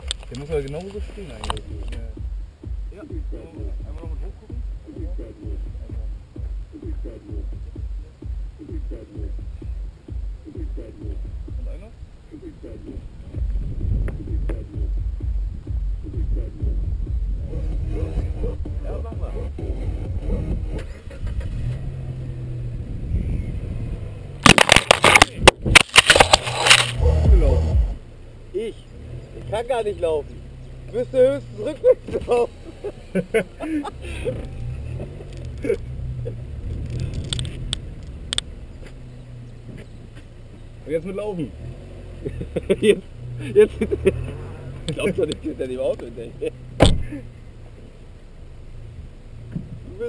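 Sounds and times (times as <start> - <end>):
car engine running: 0.0 - 50.0
wind buffeting microphone: 11.2 - 24.3
loud crackling bursts: 24.4 - 27.3.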